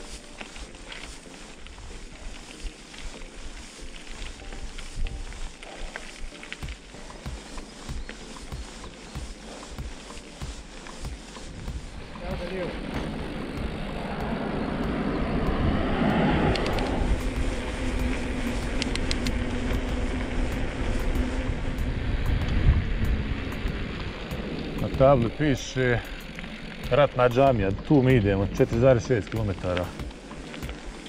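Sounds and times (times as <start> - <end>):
bike tyres rolling on gravel: 0.0 - 31.0
wind buffeting camera: 0.0 - 31.0.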